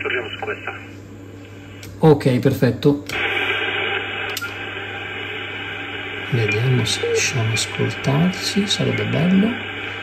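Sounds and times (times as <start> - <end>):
radio receiver hiss: 3.1 - 10.0.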